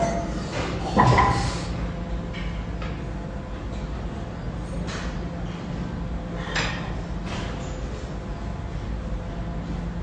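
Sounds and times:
chest press machine hissing: 0:00.0 - 0:01.9
steady low hum: 0:00.0 - 0:10.0.

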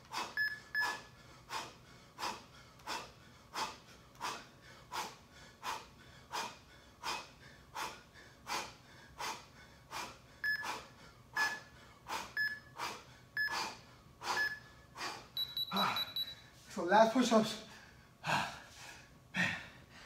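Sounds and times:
timer short beeps: 0:00.4 - 0:01.0, 0:10.4 - 0:10.8, 0:11.4 - 0:11.6, 0:12.4 - 0:12.7, 0:13.4 - 0:13.6, 0:14.4 - 0:14.7, 0:15.4 - 0:16.5.

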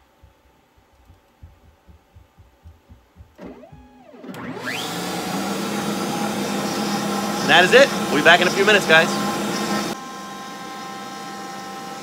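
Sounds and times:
faint low knocks: 0:00.0 - 0:04.0
shop vacuum running: 0:03.1 - 0:12.0
router motor whine: 0:03.3 - 0:12.0.

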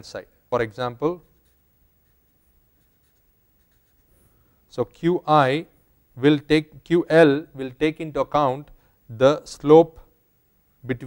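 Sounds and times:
marker scratching on paper: 0:01.1 - 0:04.2.

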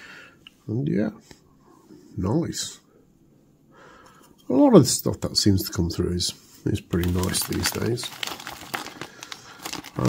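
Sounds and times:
plastic bag crinkling: 0:06.9 - 0:10.0.

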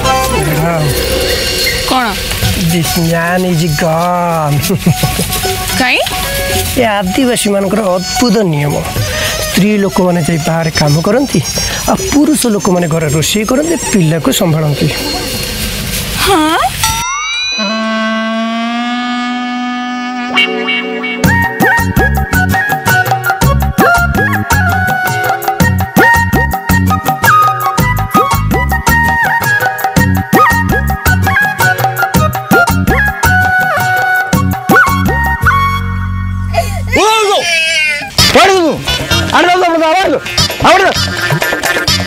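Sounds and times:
person giving high drawn-out calls: 0:17.4 - 0:20.8, 0:37.0 - 0:39.6.

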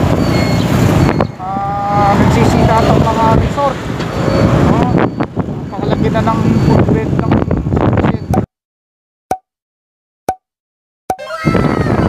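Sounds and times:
pop sound effect: 0:10.3 - 0:10.5, 0:11.1 - 0:11.3.

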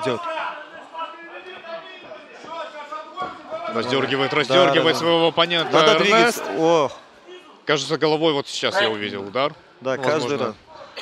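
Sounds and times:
commentary speech: 0:00.0 - 0:11.0.

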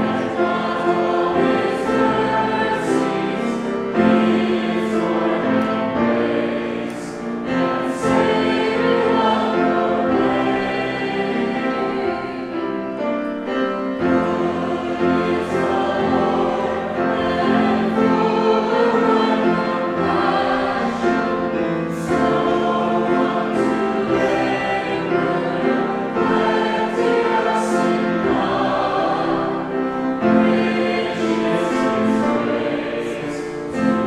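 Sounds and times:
congregation singing a hymn: 0:00.0 - 0:34.0.

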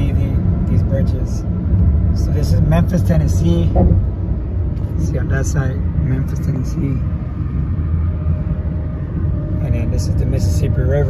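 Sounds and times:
road and engine rumble: 0:00.0 - 0:11.0.

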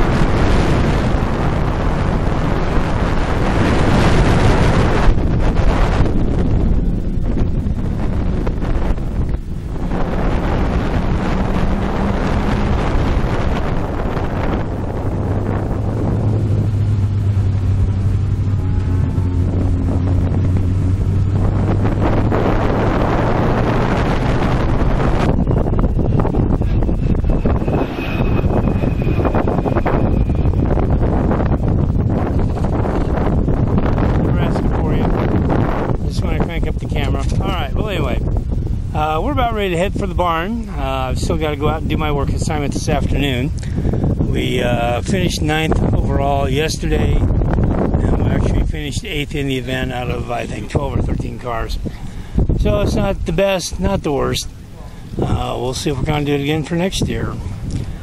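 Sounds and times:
wind noise on microphone: 0:00.0 - 0:58.0
car engine revving hard: 0:09.7 - 0:31.3.

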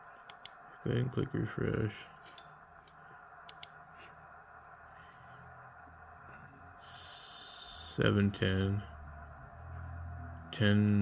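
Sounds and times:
low room noise: 0:00.0 - 0:11.0
laptop clicks: 0:03.4 - 0:03.8.

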